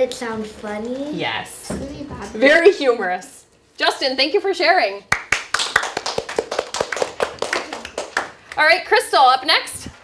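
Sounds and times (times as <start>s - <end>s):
children clapping: 5.1s - 8.6s.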